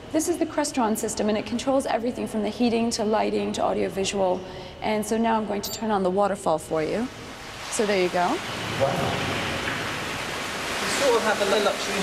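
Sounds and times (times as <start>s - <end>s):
water pouring into pool: 7.2s - 12.0s.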